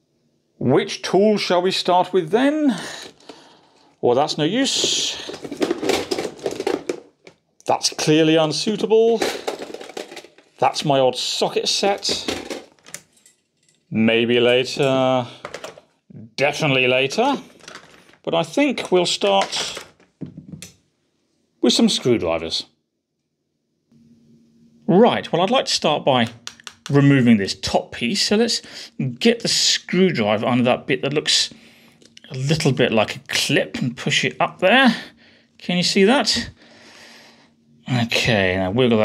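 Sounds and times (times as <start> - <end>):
faint steady hum: 0.0 - 39.0
man speaking: 0.6 - 3.1, 4.0 - 5.7, 7.7 - 9.5, 10.6 - 12.5, 13.9 - 15.5, 16.1 - 17.5, 18.2 - 19.9, 21.6 - 22.7, 24.9 - 31.6, 32.2 - 36.6, 37.8 - 39.0
hand tools clattering in toolbox: 4.7 - 7.1, 9.1 - 10.6, 12.0 - 13.8.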